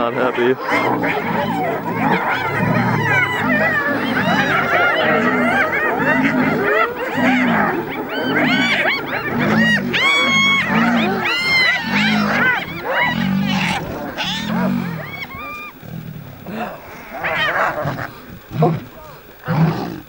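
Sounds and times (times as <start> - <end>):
hyenas giggling and whooping: 0.0 - 19.8
low repeating calls: 0.0 - 20.0.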